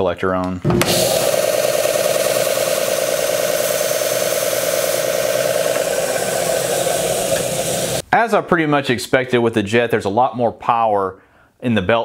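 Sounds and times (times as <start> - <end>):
belt sander sanding wood: 0.8 - 8.0
dust collector running: 0.8 - 8.0.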